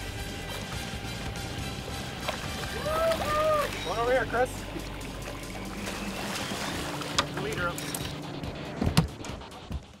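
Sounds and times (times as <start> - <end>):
water splashing and churning: 0.0 - 9.9
boat engine humming: 0.0 - 10.0.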